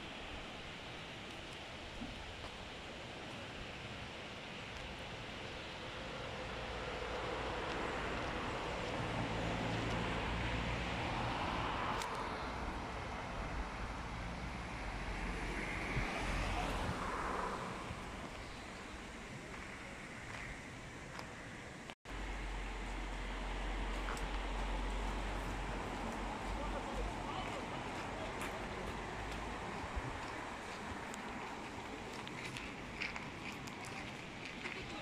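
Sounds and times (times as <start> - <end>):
distant engine noise: 0.0 - 35.0
outdoor air noise: 0.0 - 35.0.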